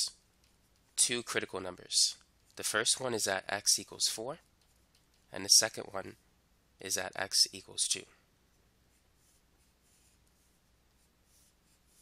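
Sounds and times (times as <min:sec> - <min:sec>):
stylus scratching on drawing tablet: 0:08.9 - 0:12.0.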